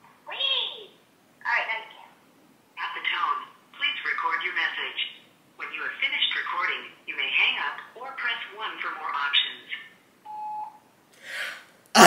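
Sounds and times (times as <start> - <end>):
short steady beep: 10.3 - 10.8.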